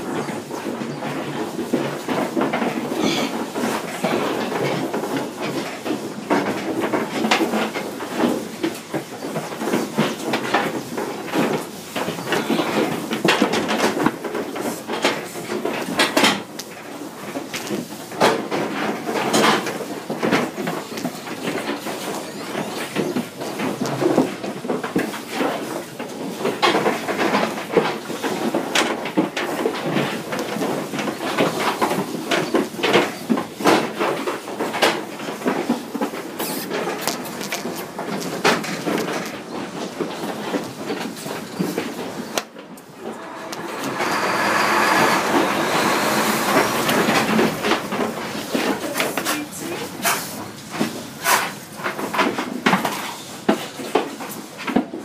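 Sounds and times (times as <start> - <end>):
metal trailer rattling: 42.7 - 50.0.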